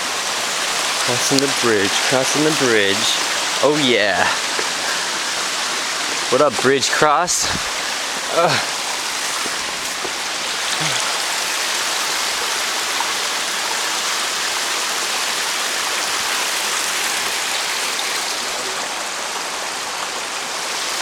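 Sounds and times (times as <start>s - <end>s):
creek water running over rocks: 0.0s - 21.0s.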